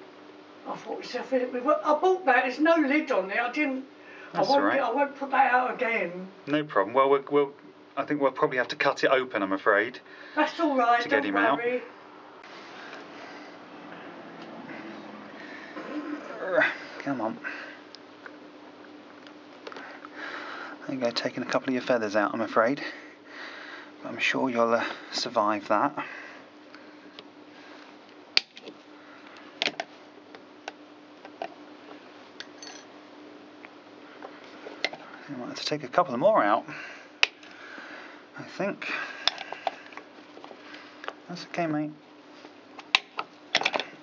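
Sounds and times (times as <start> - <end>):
low steady hum: 0.0 - 44.0
person speaking: 4.3 - 5.0, 10.4 - 11.9.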